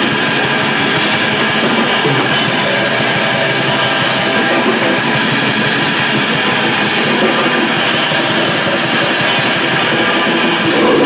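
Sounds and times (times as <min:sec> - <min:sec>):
distorted electric guitar: 0:00.0 - 0:11.0
drum kit: 0:00.0 - 0:11.0.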